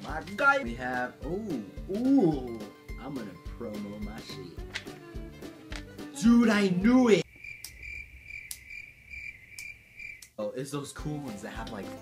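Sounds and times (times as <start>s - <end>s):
cricket chirping trill: 7.2s - 10.3s
sharp clicks: 7.5s - 7.8s, 8.4s - 8.7s, 9.5s - 10.4s.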